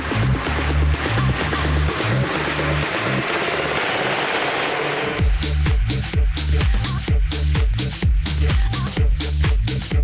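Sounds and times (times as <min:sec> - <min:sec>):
sustained bass notes: 0:00.0 - 0:04.0, 0:04.6 - 0:10.0
whooshing noise build-up: 0:01.8 - 0:06.6.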